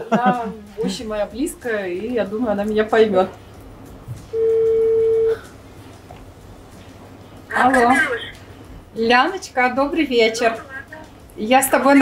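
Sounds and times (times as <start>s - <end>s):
phone ringback beep: 4.3s - 5.4s.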